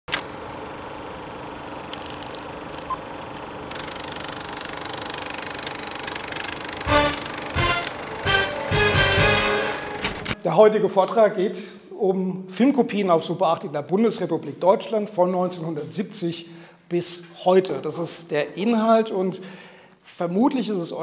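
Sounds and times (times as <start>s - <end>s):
film projector rattling: 1.8s - 8.3s
music: 6.8s - 10.4s.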